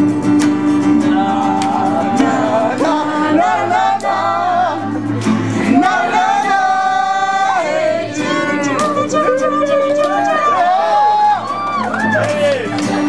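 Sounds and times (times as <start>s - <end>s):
acoustic guitar: 0.0s - 13.0s
woman singing: 1.0s - 4.9s, 5.7s - 10.8s.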